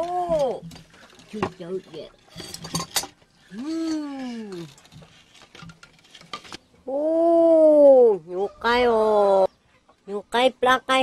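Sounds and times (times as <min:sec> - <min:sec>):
long vocal cries: 0:03.5 - 0:04.7, 0:06.9 - 0:08.1.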